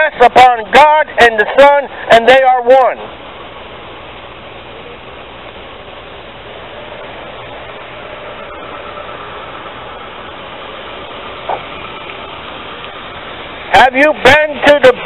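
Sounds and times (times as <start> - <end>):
street traffic noise: 0.0 - 15.0.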